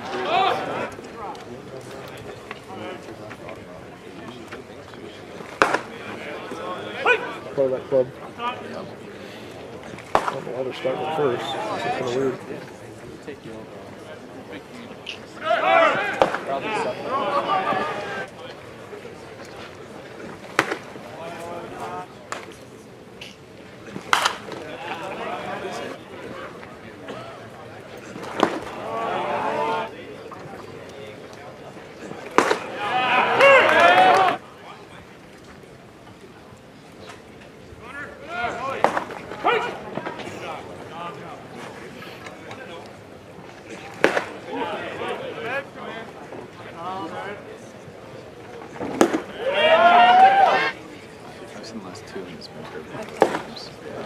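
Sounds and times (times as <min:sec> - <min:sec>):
spectators talking: 0:00.0 - 0:54.0.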